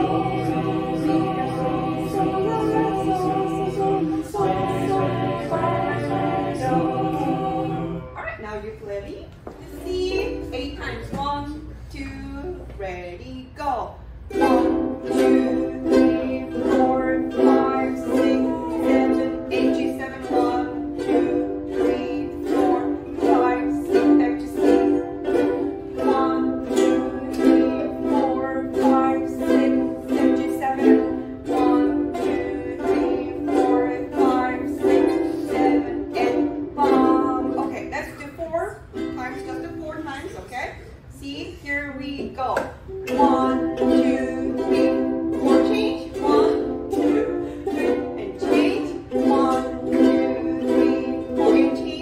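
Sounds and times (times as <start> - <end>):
ukuleles strumming chords: 0.0 - 41.1, 42.0 - 52.0.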